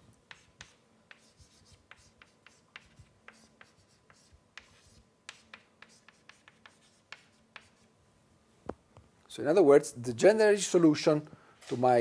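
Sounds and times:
chalk tapping and scratching: 0.0 - 7.9.

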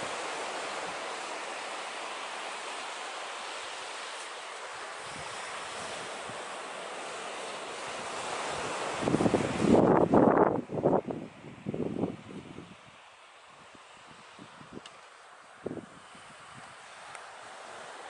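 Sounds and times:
waves washing on shingle: 0.0 - 18.0
wind buffeting microphone: 8.0 - 13.0, 15.6 - 16.8.

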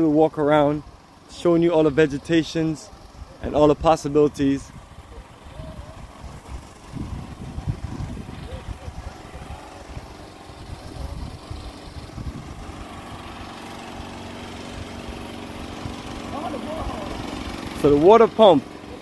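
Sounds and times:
water pump engine running: 0.0 - 19.0
wind rumbling on microphone: 4.6 - 13.3.

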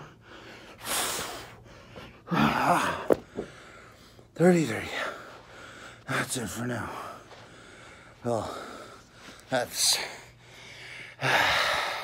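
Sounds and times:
man breathing hard: 0.0 - 12.0.

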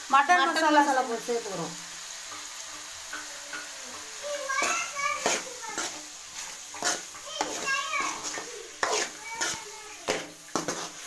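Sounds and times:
food sizzling: 0.0 - 11.0
metal spoon scraping a frying pan: 2.2 - 11.0.

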